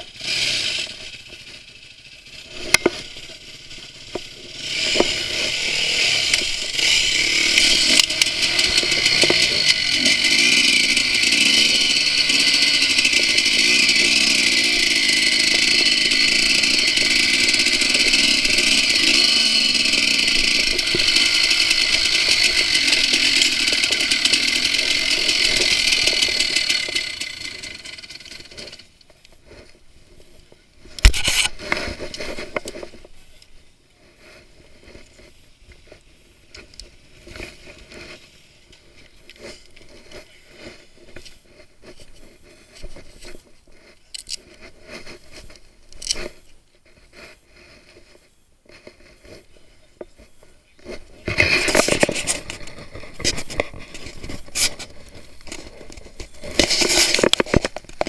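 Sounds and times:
dirt bike engine revving: 0.0 - 28.9.

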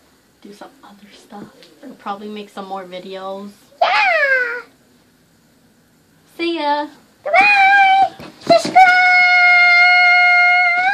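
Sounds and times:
girl squealing: 3.8 - 4.7, 7.3 - 8.2.

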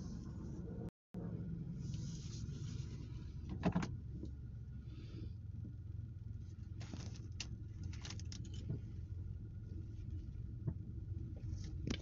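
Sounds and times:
car cabin rumble: 0.0 - 12.0
soft rustle: 1.8 - 3.4.

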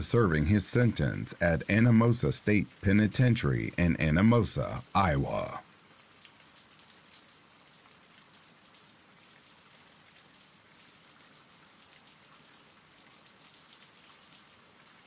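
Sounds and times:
steady rain: 0.0 - 15.0.

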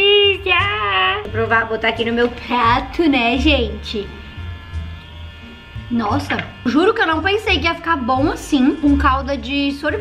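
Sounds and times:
small electric motor buzzing: 0.6 - 10.0.

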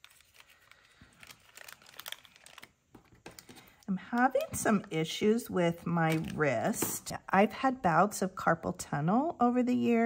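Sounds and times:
plastic package crinkling: 0.0 - 4.9.

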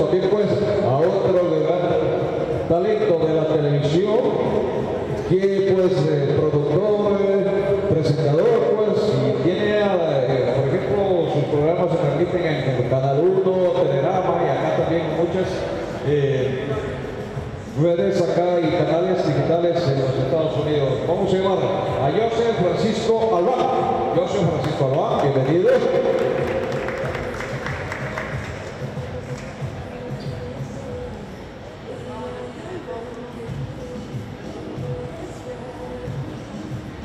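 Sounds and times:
man talking into a microphone: 0.0 - 16.9, 17.7 - 26.5.

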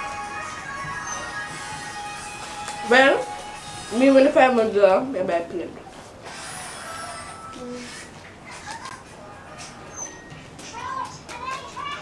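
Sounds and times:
children chattering: 7.6 - 12.0.

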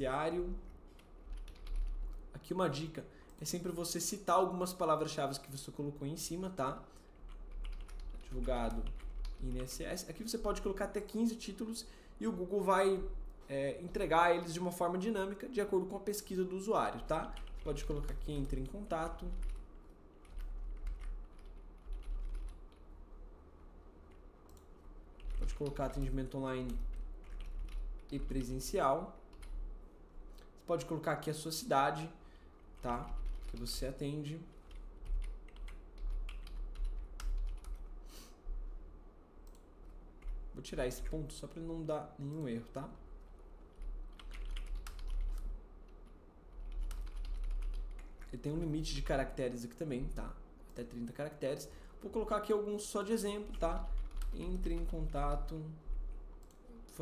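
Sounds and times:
steady low hum: 0.0 - 57.0
typing on computer keyboard: 1.0 - 2.2, 7.2 - 9.8, 17.3 - 22.8, 24.1 - 28.5, 32.8 - 33.8, 34.6 - 37.9, 43.7 - 48.3, 53.4 - 55.5.

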